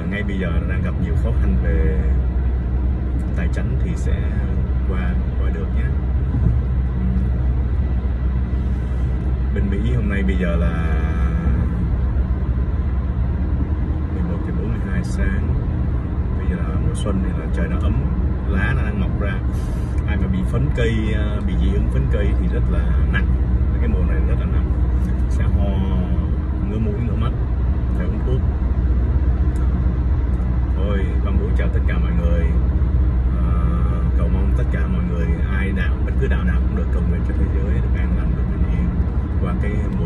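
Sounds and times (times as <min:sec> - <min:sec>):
car road and engine rumble: 0:00.0 - 0:40.0.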